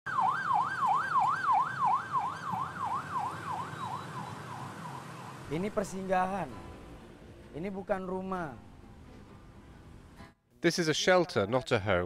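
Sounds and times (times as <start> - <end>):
emergency siren wailing: 0.1 - 5.5.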